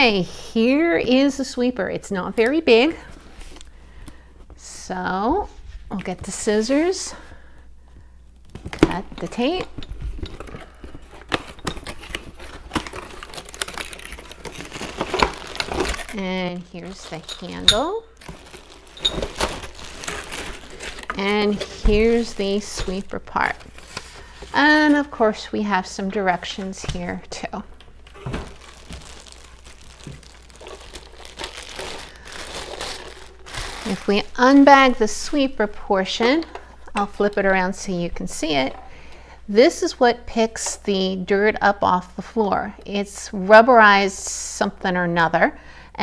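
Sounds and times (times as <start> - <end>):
plastic-bagged parts handled: 8.3 - 25.4, 26.0 - 36.6.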